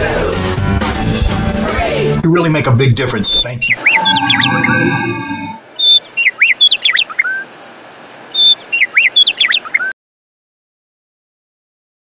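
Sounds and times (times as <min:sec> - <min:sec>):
bird whistling: 0:03.4 - 0:07.5, 0:08.3 - 0:10.0.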